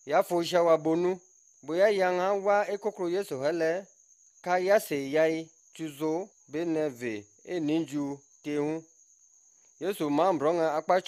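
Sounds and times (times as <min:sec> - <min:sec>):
man narrating: 0:00.1 - 0:03.8, 0:04.5 - 0:08.8, 0:09.8 - 0:11.0.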